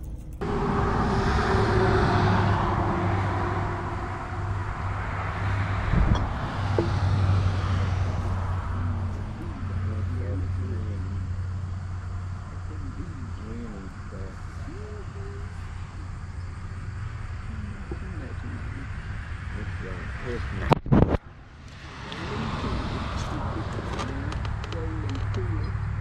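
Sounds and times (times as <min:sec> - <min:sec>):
constant low hum: 0:00.0 - 0:26.0
steady rushing: 0:00.0 - 0:26.0
faint distant voices: 0:05.4 - 0:20.8, 0:22.0 - 0:26.0.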